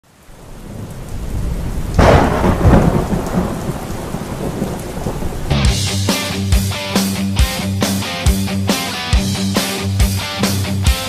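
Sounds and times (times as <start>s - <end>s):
rain hiss: 0.0s - 11.0s
thunderclap rumbling: 0.3s - 6.1s
rock music with electric guitar: 5.5s - 11.0s.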